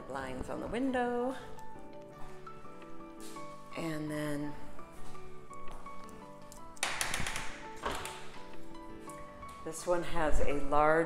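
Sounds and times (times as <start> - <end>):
background music with held tones: 0.0 - 11.0.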